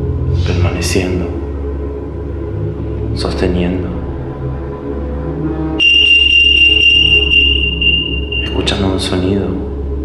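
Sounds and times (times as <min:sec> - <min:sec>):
dark ambient music drone: 0:00.0 - 0:10.0
high-pitched electronic tone: 0:05.8 - 0:08.6.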